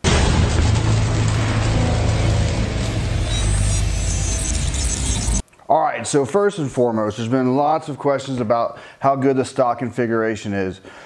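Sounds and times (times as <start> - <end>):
intro music with booming effects: 0.0 - 5.4.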